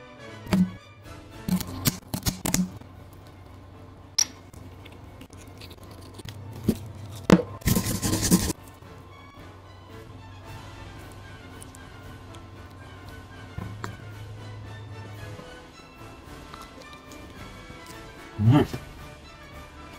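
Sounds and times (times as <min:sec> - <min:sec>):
background music: 0:00.0 - 0:19.9
scissors snipping shell: 0:01.5 - 0:02.8.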